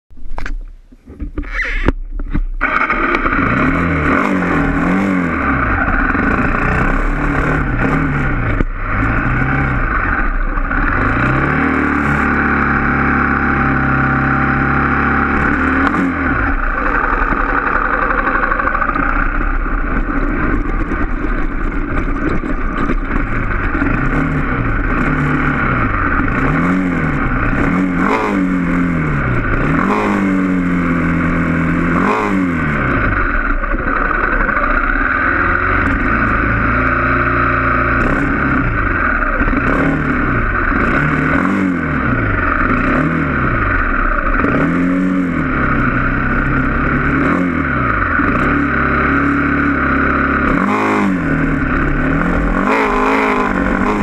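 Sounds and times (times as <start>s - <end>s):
motorcycle engine revving: 0.4s - 54.0s.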